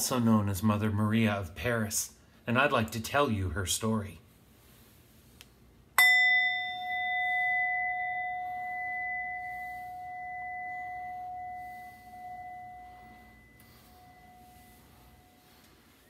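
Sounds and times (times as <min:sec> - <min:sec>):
singing bowl ringing: 0:06.0 - 0:16.0.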